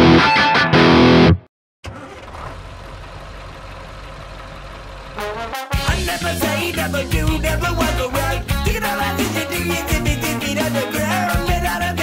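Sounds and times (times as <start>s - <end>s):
vehicle engine idling: 1.9s - 10.3s.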